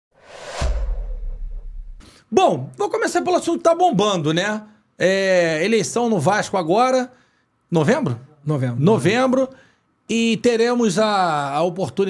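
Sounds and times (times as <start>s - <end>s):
whoosh: 0.1s - 2.1s
deep low boom: 0.2s - 2.0s.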